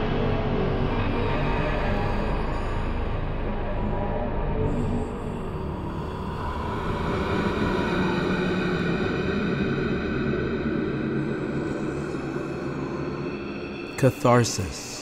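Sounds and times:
dark ambient droning music: 0.0 - 15.0.

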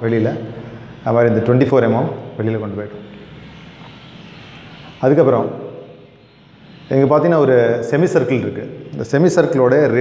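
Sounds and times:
steady background rush: 0.0 - 10.0.

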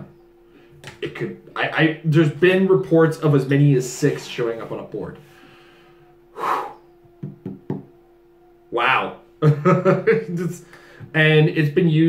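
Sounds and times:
man exhaling: 5.4 - 6.8.

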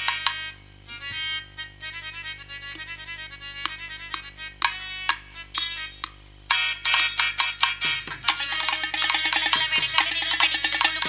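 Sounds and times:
harmonium melody: 0.0 - 11.0
low electrical hum: 0.0 - 11.0
drum strokes: 3.6 - 11.0.

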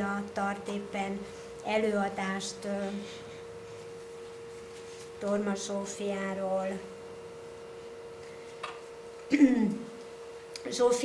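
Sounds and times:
steady pure tone whine: 0.0 - 11.0.

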